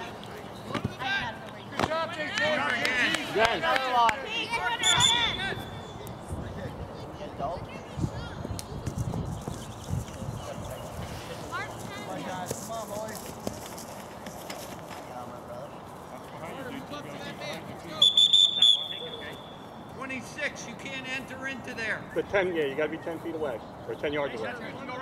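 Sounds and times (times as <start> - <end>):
distant voices of players and spectators: 0.0 - 25.0
referee's whistle blast: 4.8 - 6.0, 18.0 - 19.5.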